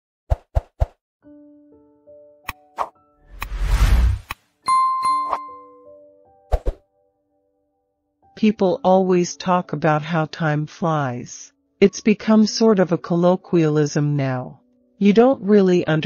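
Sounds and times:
whoosh: 2.8 - 4.4
bright bell-like ding: 4.7 - 5.8.

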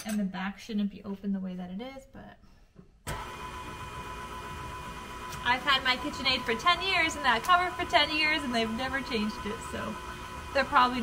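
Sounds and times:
stand mixer motor running: 3.1 - 11.0.

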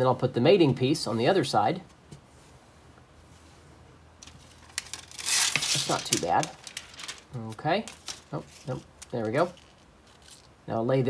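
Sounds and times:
release liner peeling off tape: 4.2 - 7.3.

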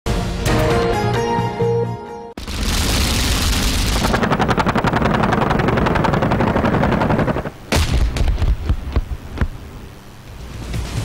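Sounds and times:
weapon blast: 2.4 - 8.2
rapid gunfire: 2.4 - 8.7.

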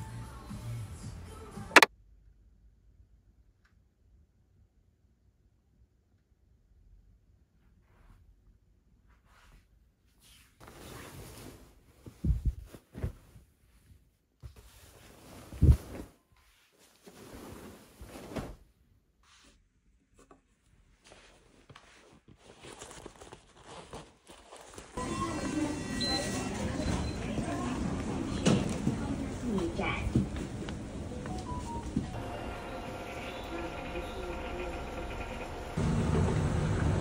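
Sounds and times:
bedding rustling: 10.3 - 18.8
subway train noise: 25.0 - 37.0
voices: 25.0 - 37.0.

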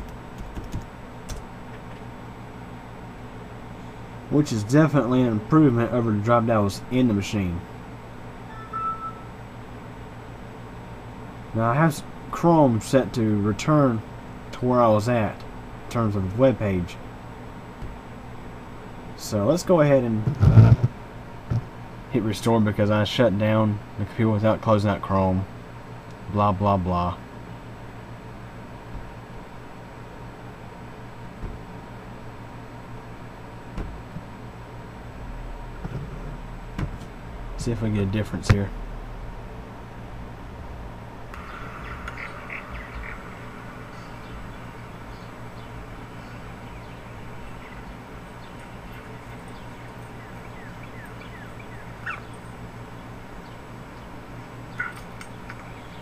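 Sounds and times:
low hum with light hiss: 0.0 - 56.0
faint high tone: 8.4 - 9.4.

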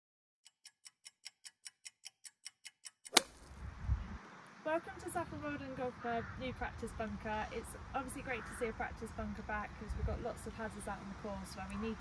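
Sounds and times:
sharp click: 0.5 - 3.5
wind rumble on microphone: 3.5 - 12.0.

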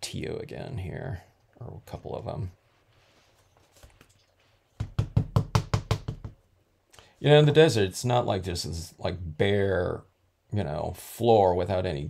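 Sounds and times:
ink pad knocking on stamp: 4.8 - 6.4.

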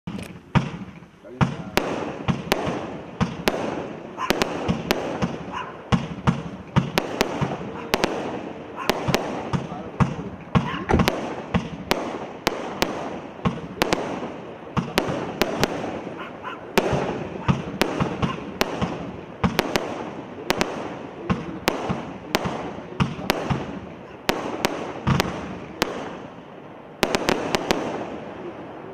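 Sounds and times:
firework bangs: 0.0 - 28.9.

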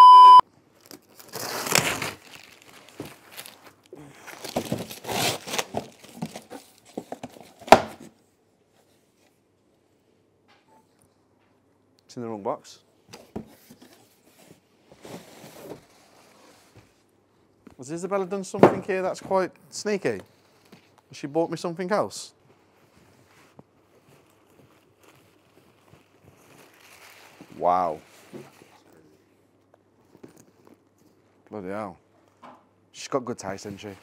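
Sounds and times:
packaging rustling: 0.8 - 7.7, 22.6 - 28.8.

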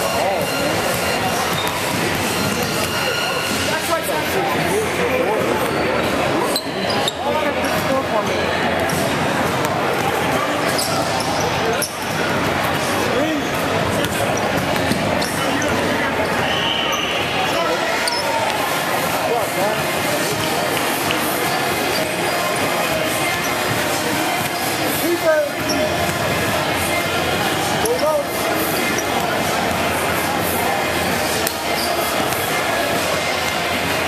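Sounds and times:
babble of echoing voices: 0.0 - 34.0.

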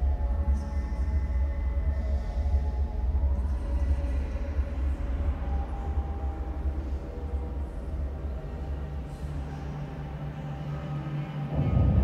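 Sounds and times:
deep low rumble: 11.5 - 12.0.

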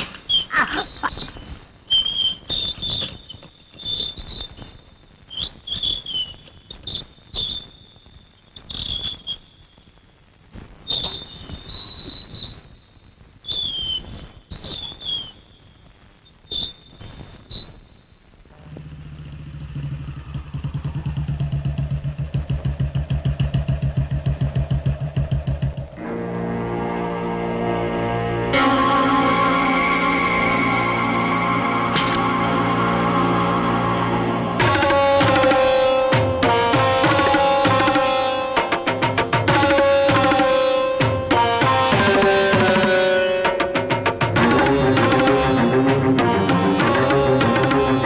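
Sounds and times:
motorcycle engine: 18.6 - 26.0.

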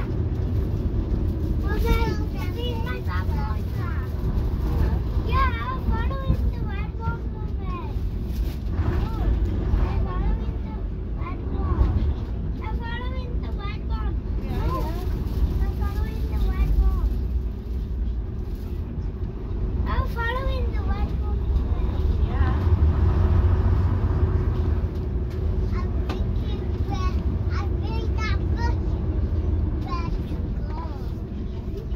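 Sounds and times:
coach diesel engine rumble: 0.0 - 31.9.

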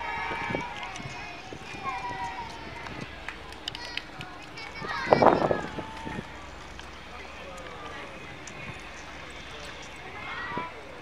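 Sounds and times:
people talking outdoors: 0.0 - 11.0.

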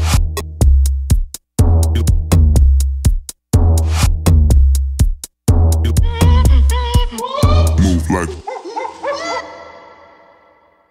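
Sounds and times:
electronic dance bass and beat: 0.0 - 8.4.

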